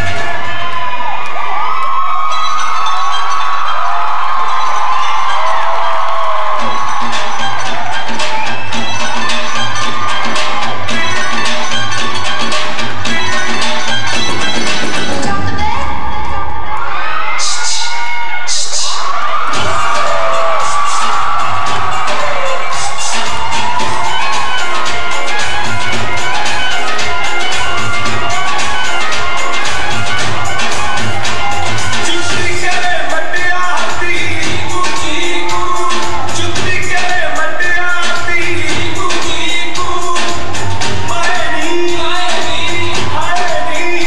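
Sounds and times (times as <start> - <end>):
high yells: 0.0 - 14.0, 15.1 - 38.7
audience cheering and whooping: 0.0 - 44.0
dance music playing loud: 0.0 - 44.0.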